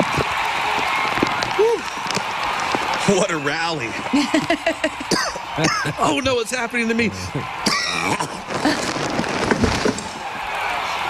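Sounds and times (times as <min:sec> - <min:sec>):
man laughing: 0:05.6 - 0:06.3.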